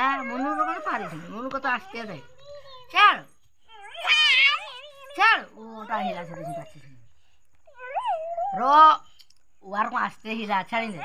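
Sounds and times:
young children calling and squealing: 0.0 - 7.0, 7.7 - 9.0.

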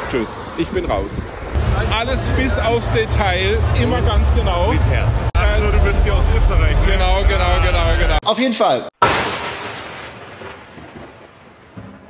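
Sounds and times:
thunder-like rumble: 9.1 - 12.0.

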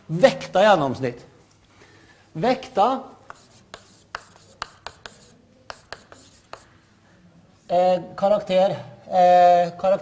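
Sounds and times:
chalk tapping and scratching: 3.2 - 6.8.

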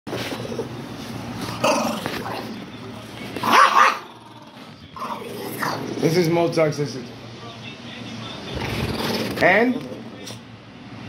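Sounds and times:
dog growling and barking: 1.5 - 2.6, 3.4 - 6.2, 8.5 - 10.0.

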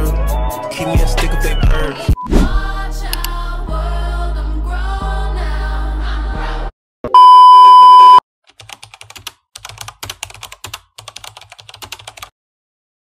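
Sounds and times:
high test-tone beep: 7.1 - 8.2
rapid keyboard typing: 8.5 - 12.3.

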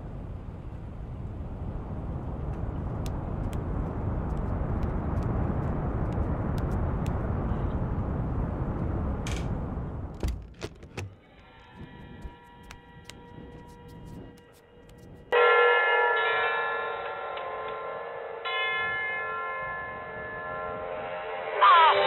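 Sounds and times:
heavy bell tolling: 15.4 - 22.0.

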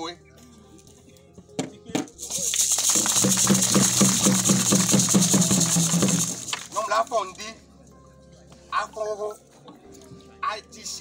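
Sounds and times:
shaken rattles hissing: 2.1 - 7.0
hand drums beating: 2.5 - 6.7.

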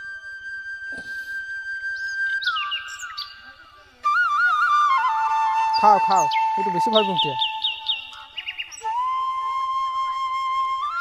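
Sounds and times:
flute music: 0.0 - 11.0.

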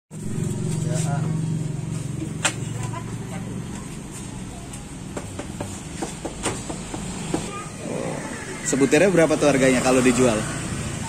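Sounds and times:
vehicle engine running: 0.1 - 6.0
indistinct voices: 7.3 - 11.0.

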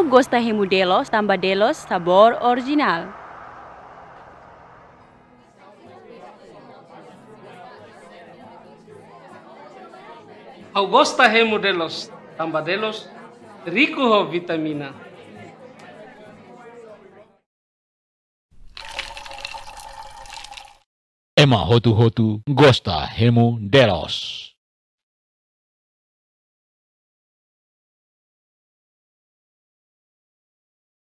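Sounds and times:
people talking at once: 5.5 - 17.4
juice pouring over ice: 18.6 - 20.8.

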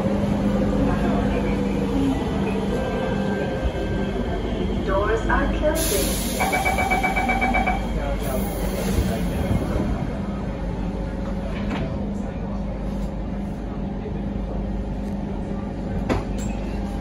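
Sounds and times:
train wheels rumbling on rails: 0.0 - 17.0.

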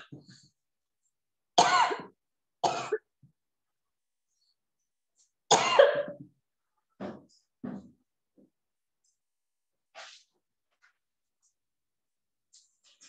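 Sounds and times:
woman coughing: 1.6 - 3.0, 5.5 - 6.2.

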